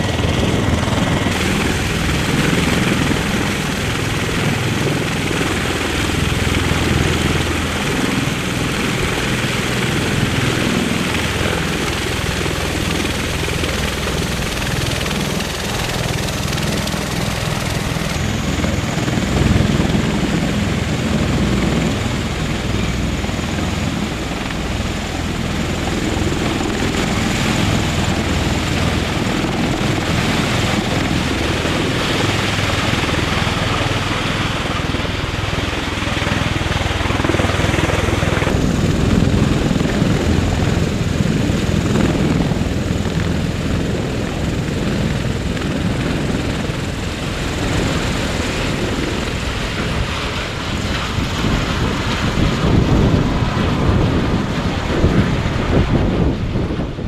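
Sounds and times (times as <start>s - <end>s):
aircraft rotor noise: 0.0s - 57.0s.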